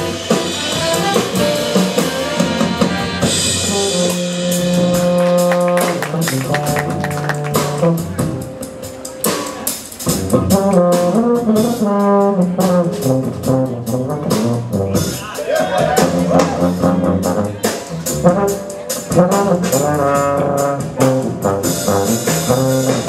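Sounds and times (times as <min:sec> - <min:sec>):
drum strokes: 0:00.0 - 0:23.0
held brass chords: 0:00.0 - 0:23.0
jazz big band playing: 0:00.0 - 0:23.0.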